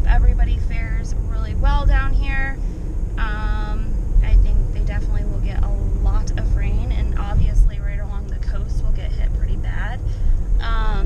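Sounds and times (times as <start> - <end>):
voices talking: 0.0 - 2.6, 3.2 - 11.0
car road and engine noise: 0.0 - 11.0.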